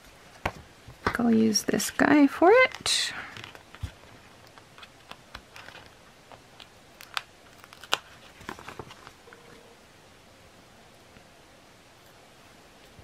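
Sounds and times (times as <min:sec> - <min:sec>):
sticker peeling paper crackles: 0:02.6 - 0:09.4.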